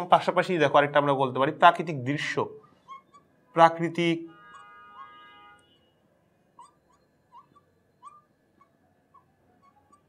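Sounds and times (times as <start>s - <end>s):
marker pen squeaking on board: 2.6s - 3.4s, 4.4s - 5.3s, 6.6s - 10.0s.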